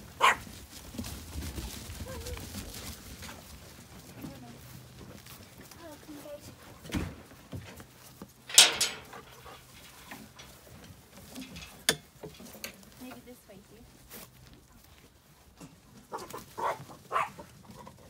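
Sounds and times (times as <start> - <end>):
dog barking: 0.2 - 0.4, 16.1 - 17.4
metal gate latch clanking: 8.5 - 10.6.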